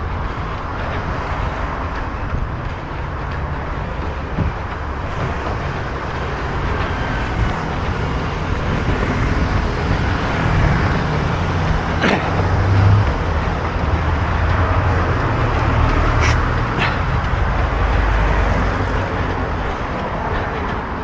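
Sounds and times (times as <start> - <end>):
cars and scooters passing: 0.0 - 21.0.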